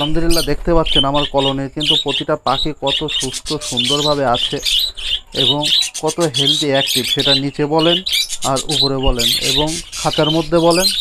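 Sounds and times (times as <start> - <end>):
budgerigars chattering and chirping: 0.0 - 11.0.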